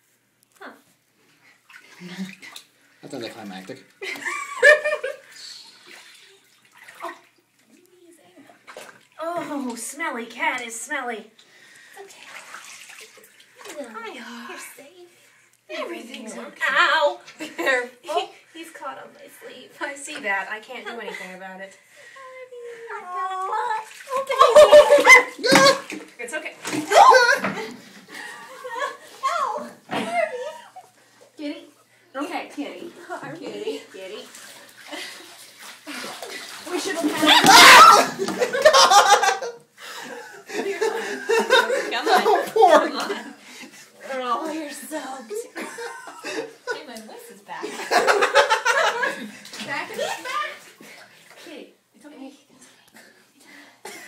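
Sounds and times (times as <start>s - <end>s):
water splashing in bathtub: 1.4s - 14.7s, 23.2s - 31.4s, 32.8s - 47.0s, 47.6s - 51.6s.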